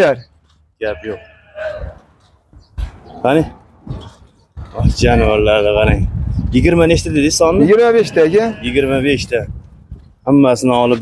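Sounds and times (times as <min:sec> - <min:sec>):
sheep bleating: 0:00.8 - 0:02.0, 0:07.6 - 0:09.2.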